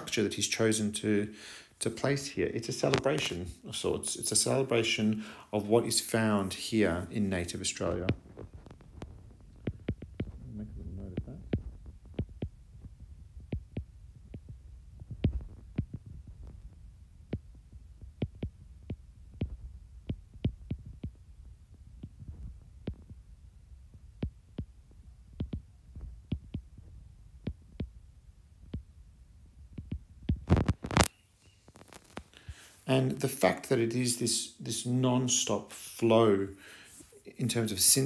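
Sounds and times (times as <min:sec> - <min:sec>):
low hum: 0:08.0 - 0:30.6
stylus tapping on glass screen: 0:08.1 - 0:10.4, 0:11.1 - 0:23.2, 0:23.9 - 0:28.0, 0:28.6 - 0:28.9, 0:29.7 - 0:31.1.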